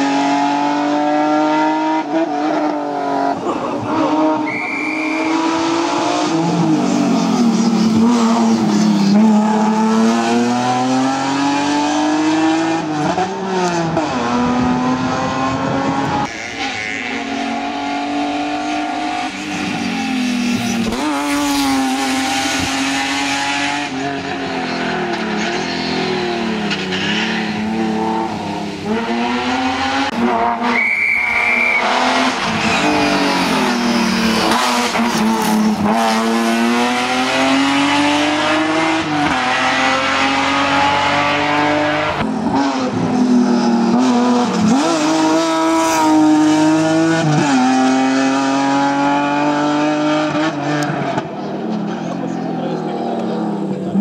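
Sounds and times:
race car engine driven hard: 0.0s - 54.0s
tyre squeal: 4.4s - 5.6s, 30.7s - 35.6s.

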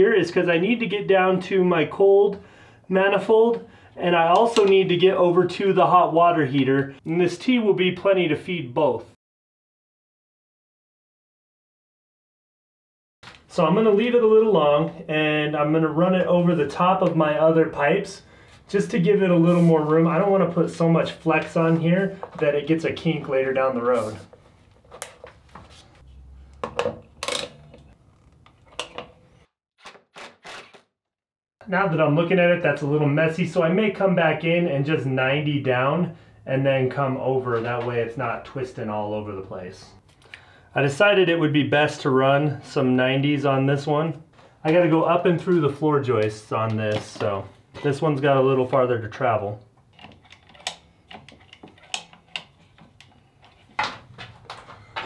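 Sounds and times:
clicks and knocks of plumbing fittings: 26.6s - 29.2s, 49.8s - 55.0s
plastic plumbing fittings clicking: 49.9s - 53.6s.

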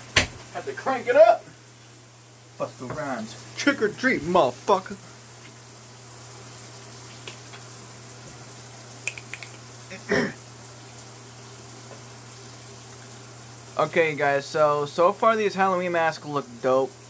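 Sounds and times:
background hiss: 0.0s - 17.0s
faint ticks: 9.0s - 9.6s.

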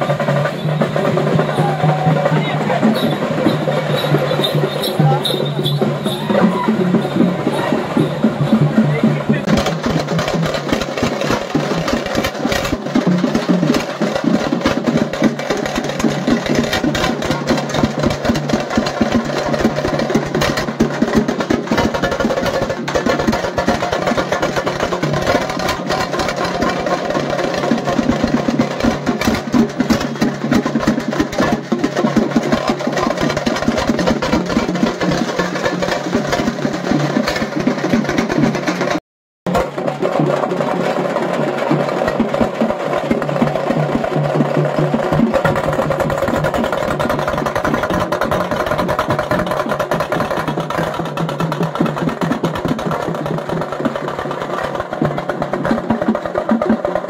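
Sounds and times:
drum-driven procession music: 0.0s - 57.0s.

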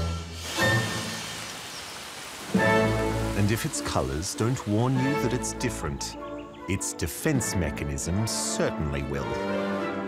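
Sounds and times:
rain falling on leaves: 0.4s - 5.3s
soft background music: 2.5s - 10.0s.

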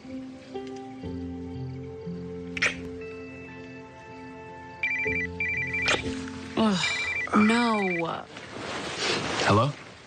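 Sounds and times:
soft background music: 0.0s - 8.3s
phone ringtone trilling: 4.8s - 8.1s.

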